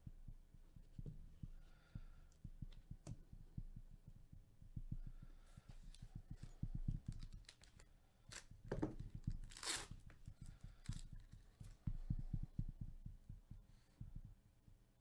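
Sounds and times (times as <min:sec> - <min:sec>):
soft handling thumps: 0:00.1 - 0:14.4
foil wrapper crinkling: 0:07.1 - 0:08.5, 0:09.2 - 0:10.1
foil wrapper ripping: 0:09.4 - 0:09.9.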